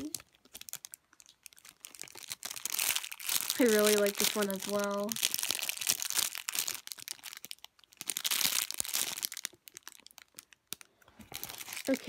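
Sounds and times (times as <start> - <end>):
faint crackles: 0.0 - 12.0
plastic bag crinkling: 0.0 - 12.0.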